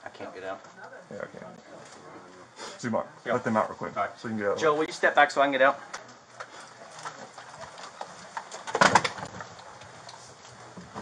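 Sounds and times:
gear knocking and rustling: 6.9s - 11.0s.

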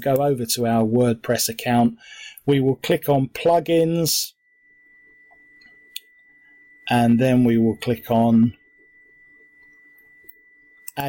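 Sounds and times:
faint high-pitched tone: 0.0s - 11.0s.

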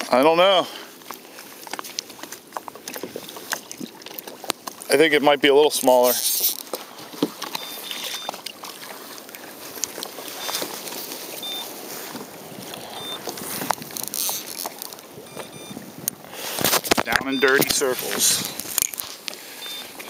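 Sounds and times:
water around kayak: 0.0s - 20.0s
wind: 0.0s - 20.0s
clicks and rustling of fishing gear: 0.8s - 20.0s.

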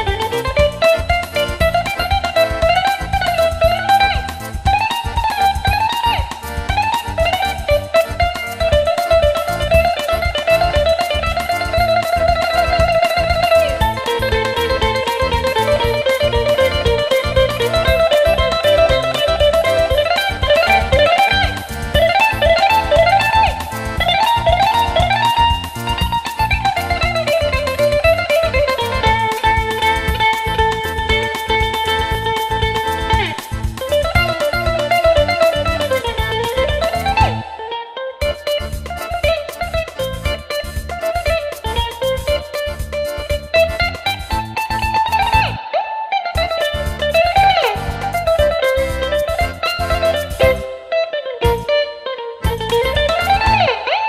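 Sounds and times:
bouzouki melody: 0.0s - 54.0s.

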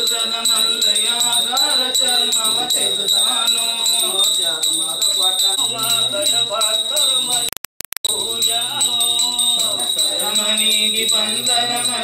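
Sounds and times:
devotional song with singing: 0.0s - 7.5s, 8.1s - 12.0s
small brass hand bells ringing: 0.0s - 7.5s, 8.1s - 12.0s.

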